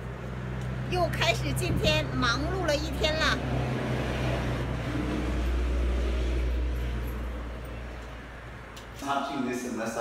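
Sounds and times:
vehicle engine rumbling: 0.0 - 9.0.

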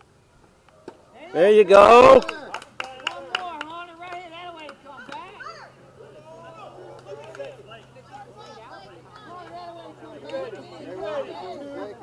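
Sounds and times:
voices chattering: 0.6 - 12.0.

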